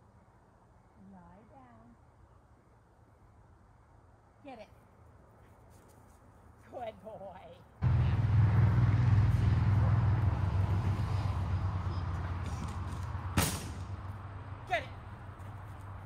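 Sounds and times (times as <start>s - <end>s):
vehicle engine: 7.8s - 16.0s.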